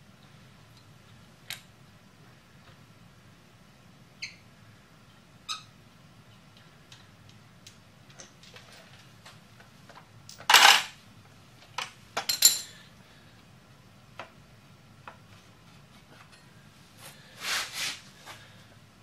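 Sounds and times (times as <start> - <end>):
metal tools clinking: 12.2 - 12.8.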